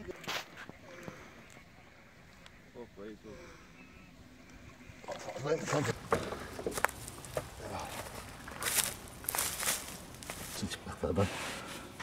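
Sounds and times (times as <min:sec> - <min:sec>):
voices: 0:00.0 - 0:11.7.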